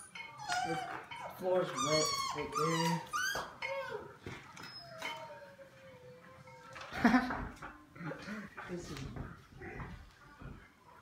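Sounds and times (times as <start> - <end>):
puppies whining: 0.0 - 6.9.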